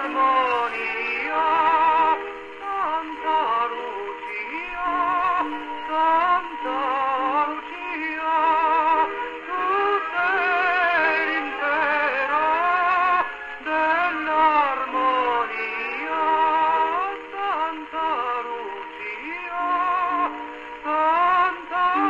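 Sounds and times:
gramophone record playing: 0.0s - 22.0s
person singing with vibrato: 0.0s - 22.0s.

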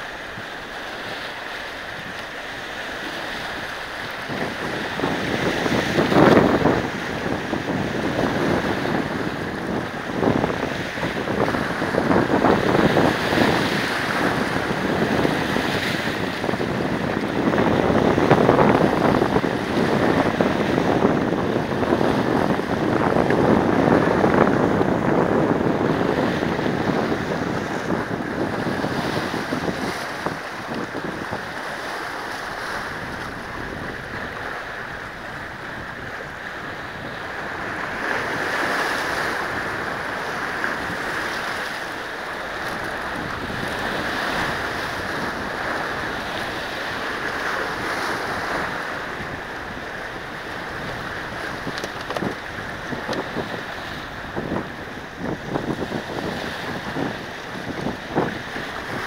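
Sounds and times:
small waves splashing on boulders: 0.0s - 59.0s.

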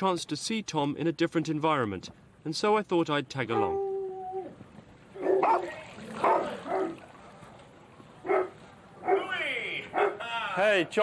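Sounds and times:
dog barking in yaps: 3.6s - 3.8s, 5.2s - 7.0s, 8.2s - 9.3s, 9.9s - 10.2s.

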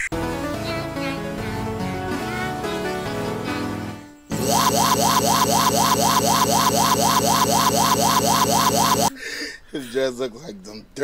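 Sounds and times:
buzzing audio stutter: 4.3s - 9.1s.

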